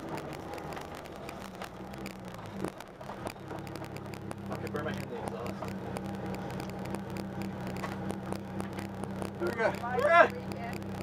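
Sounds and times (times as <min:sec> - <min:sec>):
car engine idling: 0:00.0 - 0:11.0
light irregular clicks: 0:00.0 - 0:11.0.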